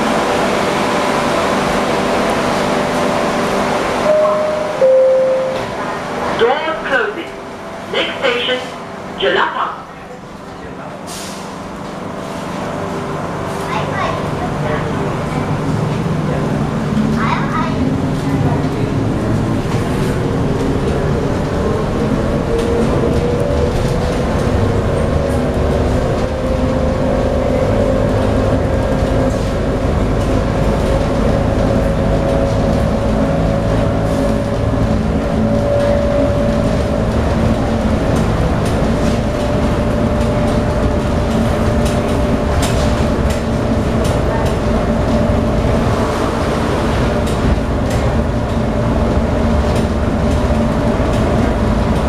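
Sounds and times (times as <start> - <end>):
train rumble with motor whine: 0.0 - 52.0.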